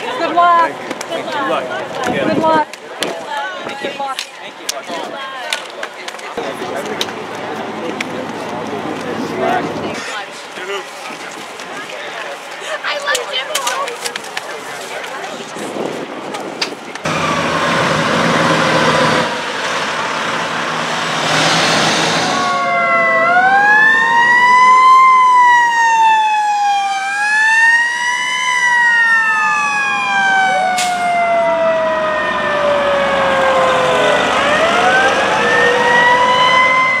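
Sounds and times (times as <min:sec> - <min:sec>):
loud rushing noise: 0:17.0 - 0:22.7
fire engine sirens wailing: 0:17.0 - 0:37.0.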